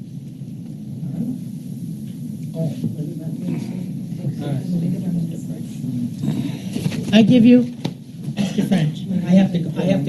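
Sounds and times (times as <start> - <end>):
low steady room rumble: 0.0 - 10.0.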